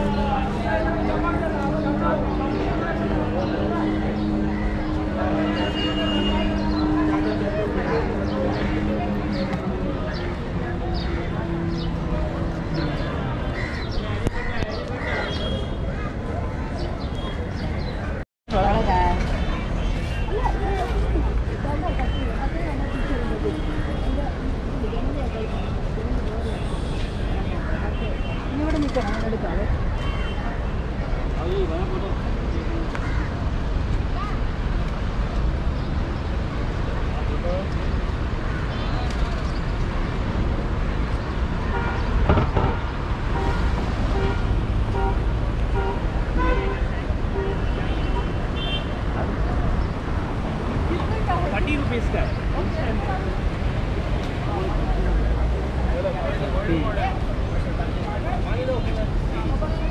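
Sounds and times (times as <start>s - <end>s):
people talking: 0.0s - 33.0s, 50.8s - 59.9s
road traffic rumble: 0.0s - 59.9s.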